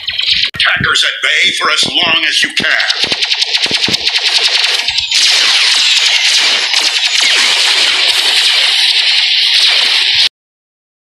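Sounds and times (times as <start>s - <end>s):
rapid-fire blaster shots: 1.8s - 10.3s
hissing rush of blaster fire: 3.1s - 10.3s.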